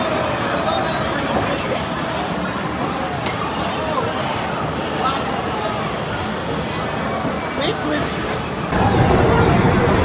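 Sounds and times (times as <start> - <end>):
arcade game sounds rumbling: 0.0 - 10.0.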